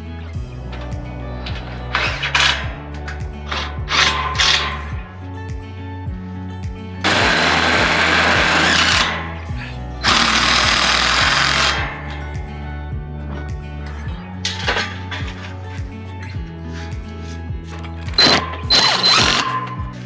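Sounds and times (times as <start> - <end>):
background music with steady beat: 0.0 - 20.0
power driver running screws: 7.1 - 9.2, 10.0 - 12.0, 18.1 - 19.7.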